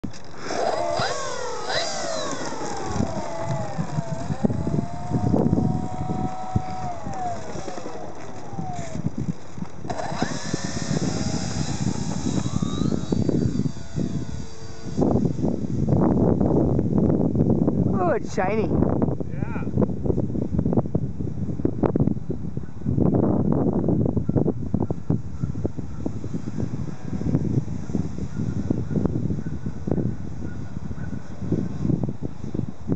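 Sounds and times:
wind rumble on microphone: 0:00.0 - 0:32.9
model plane motor whining: 0:00.1 - 0:16.8.

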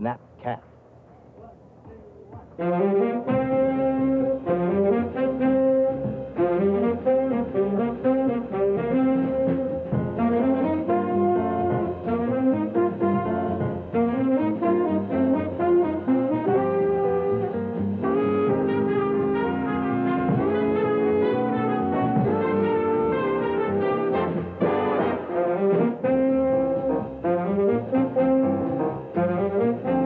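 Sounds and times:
big band playing jazz: 0:01.8 - 0:30.0.

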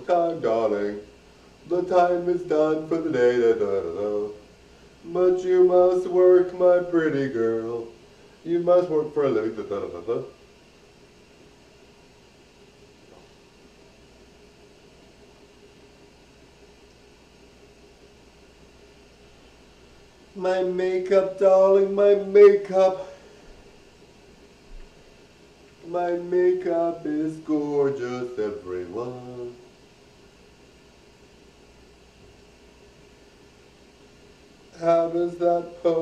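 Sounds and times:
faint even hum: 0:00.0 - 0:36.0
steady hiss: 0:00.0 - 0:36.0.

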